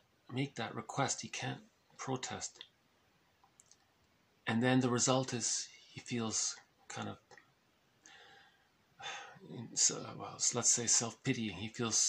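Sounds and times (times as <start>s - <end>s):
soft breath: 8.0s - 9.5s.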